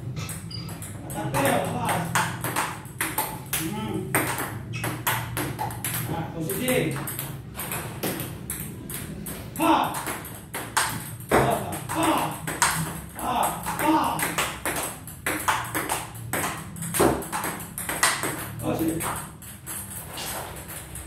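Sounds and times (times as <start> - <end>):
table tennis ball rally: 0.0 - 21.0.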